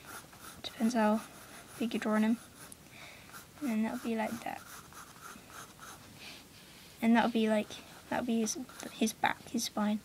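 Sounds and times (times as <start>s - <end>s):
pencil scratching on paper: 0.0s - 6.1s, 7.1s - 9.2s.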